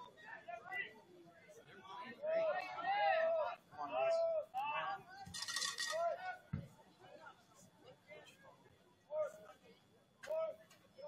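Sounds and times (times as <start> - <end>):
people's voices: 0.0 - 11.0.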